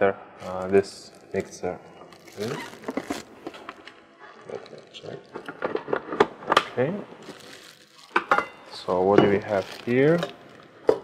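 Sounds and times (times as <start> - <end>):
plastic bag crinkling: 0.4 - 6.2, 7.2 - 10.7.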